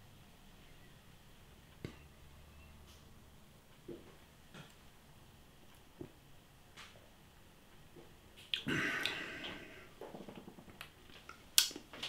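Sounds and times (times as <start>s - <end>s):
soft lip smacks: 8.4s - 9.2s.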